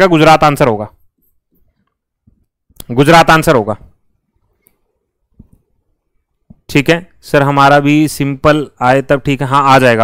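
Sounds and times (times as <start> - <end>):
man speaking: 0.0 - 1.0, 2.8 - 4.0, 6.6 - 10.0.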